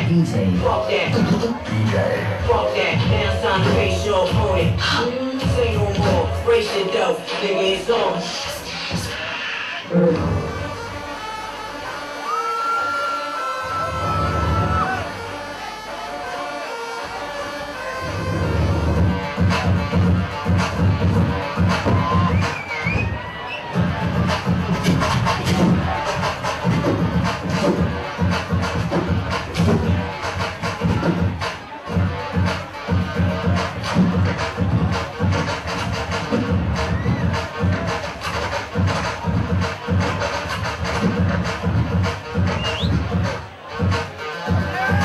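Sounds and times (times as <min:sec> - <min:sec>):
turntable scratching routine: 0:00.0 - 0:11.4, 0:17.6 - 0:45.0
bass: 0:00.0 - 0:45.0.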